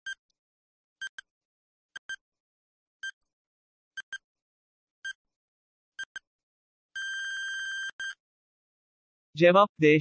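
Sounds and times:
electronic timer beeps: 0:02.0 - 0:02.2, 0:04.0 - 0:04.2, 0:06.0 - 0:06.2, 0:07.0 - 0:08.2.

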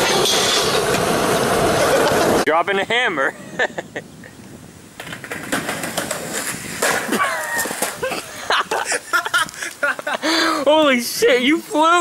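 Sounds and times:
skateboard clattering on pavement: 0:05.0 - 0:10.2
voices calling out: 0:07.1 - 0:11.5.

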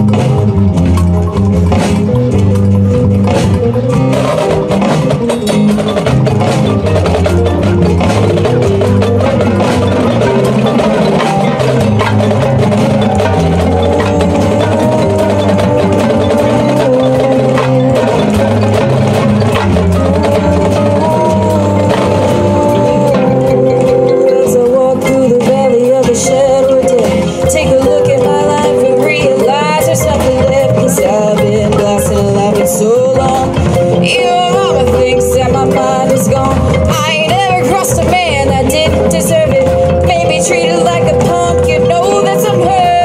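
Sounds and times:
sustained low chords: 0:00.0 - 0:25.0
marimbas playing: 0:00.0 - 0:43.0
held wavering note: 0:07.1 - 0:31.9.

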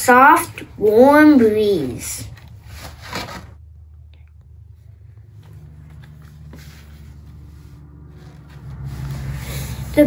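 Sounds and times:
book pages rustling: 0:02.3 - 0:03.8, 0:04.7 - 0:10.0.

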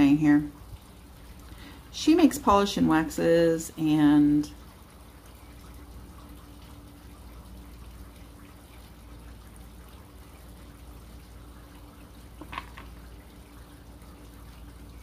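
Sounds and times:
low electrical hum: 0:00.0 - 0:15.0.

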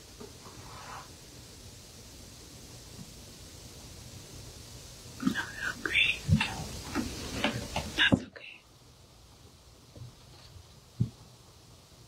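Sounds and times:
person whispering: 0:05.2 - 0:06.8, 0:08.0 - 0:08.7.

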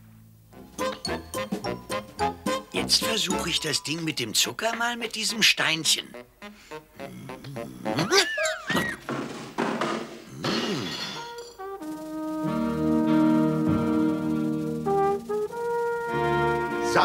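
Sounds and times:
brass sustained chords: 0:11.7 - 0:17.0.

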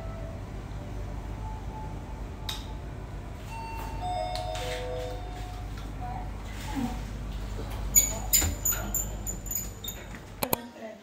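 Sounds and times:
steady low hum: 0:00.0 - 0:10.5.

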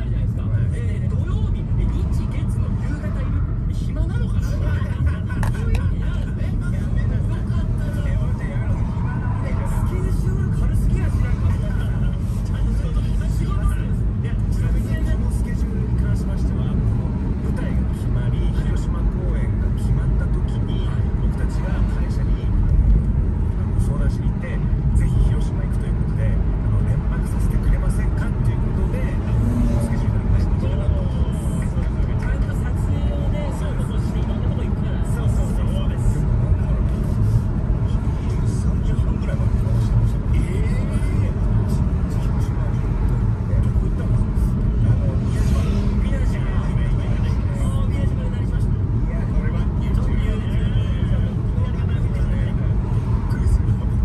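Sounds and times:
car engine and tyre noise: 0:00.0 - 0:54.0.

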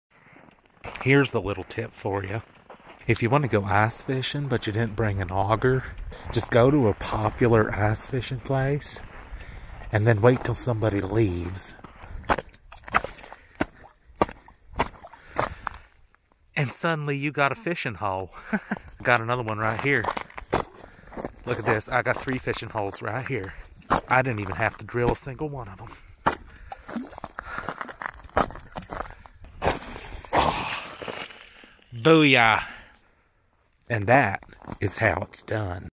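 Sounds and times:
footsteps crunching on snow: 0:00.3 - 0:07.7, 0:19.6 - 0:24.7, 0:26.3 - 0:31.8.

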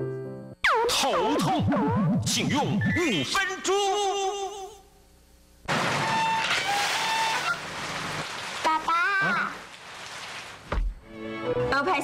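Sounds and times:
rain-like hiss: 0:05.7 - 0:10.8.

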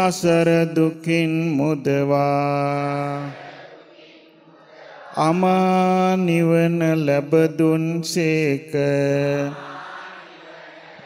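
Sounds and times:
monk chanting: 0:00.0 - 0:03.6, 0:05.1 - 0:10.3.

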